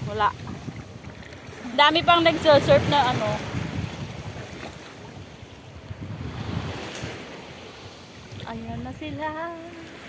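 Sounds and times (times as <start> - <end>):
small waves lapping: 0.0 - 10.0
wind buffeting microphone: 0.0 - 10.0.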